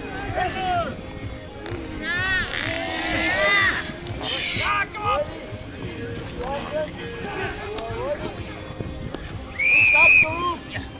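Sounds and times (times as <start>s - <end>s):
voices shouting: 0.0s - 5.5s, 9.5s - 10.9s
whistle blast: 9.5s - 10.4s.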